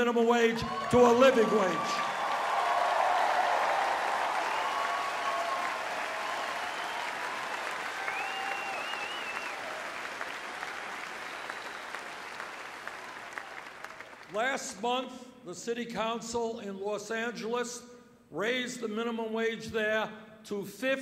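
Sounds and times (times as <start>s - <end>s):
crowd shouts and whoops: 0.6s - 9.9s
crowd applauding: 0.6s - 14.4s.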